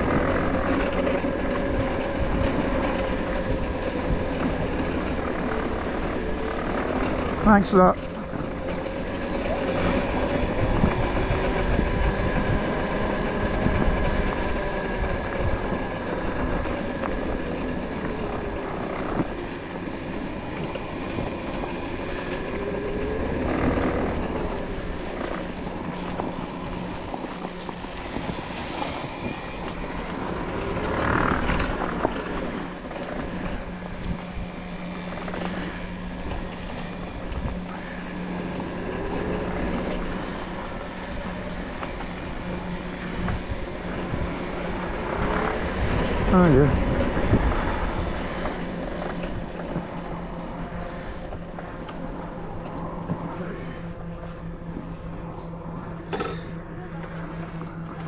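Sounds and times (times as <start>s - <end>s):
electric motorbike motor whining: 0.0s - 58.0s
low trail rumble: 0.0s - 58.0s.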